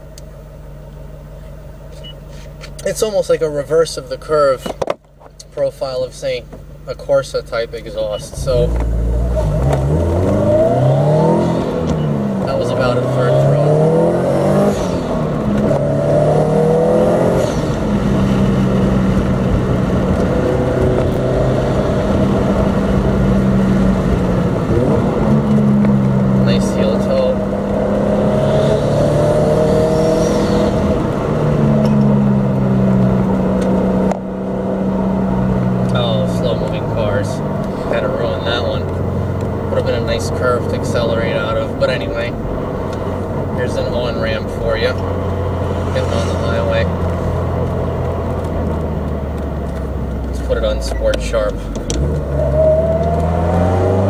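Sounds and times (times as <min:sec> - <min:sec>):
car engine accelerating: 0:07.8 - 0:54.0.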